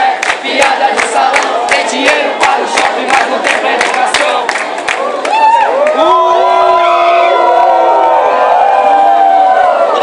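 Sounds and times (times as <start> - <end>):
crowd booing: 0.0 - 10.0.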